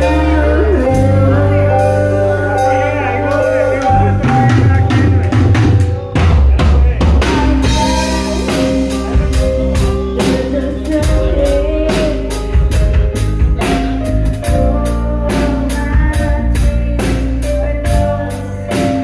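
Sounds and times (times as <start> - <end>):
live rock band playing: 0.0 - 19.0
drum strikes: 3.4 - 14.8.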